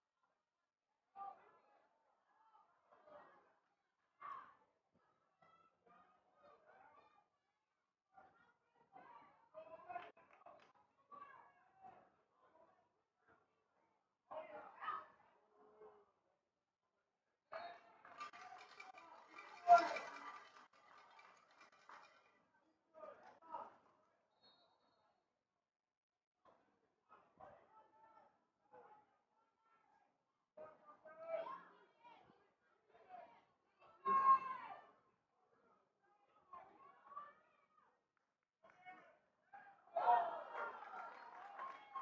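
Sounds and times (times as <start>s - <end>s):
distant shouting voices: 18.3s - 20.7s.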